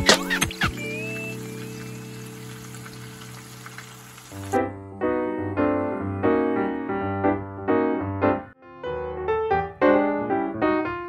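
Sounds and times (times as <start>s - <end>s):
background music: 0.0s - 11.0s
piano phrase: 0.0s - 11.0s
food sizzling in a pan: 0.2s - 4.6s.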